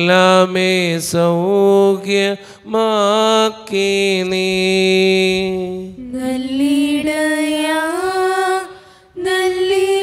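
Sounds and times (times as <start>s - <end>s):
man chanting into a microphone: 0.0s - 6.1s.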